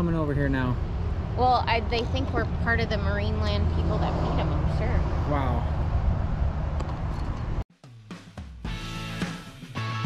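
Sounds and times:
low outdoor rumble: 0:00.0 - 0:07.6.

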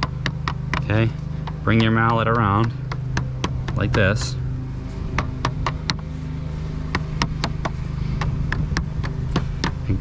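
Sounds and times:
rubber mallet tapping metal: 0:00.0 - 0:04.4, 0:06.9 - 0:09.8
steady low hum: 0:00.0 - 0:10.0.

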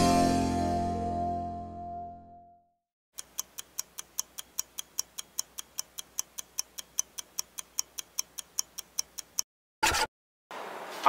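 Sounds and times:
stopwatch ticking: 0:03.2 - 0:09.5.

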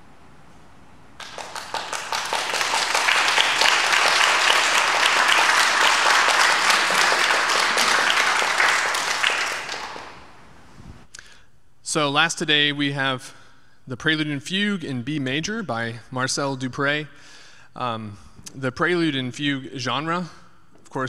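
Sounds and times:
audience applauding: 0:01.2 - 0:10.4.

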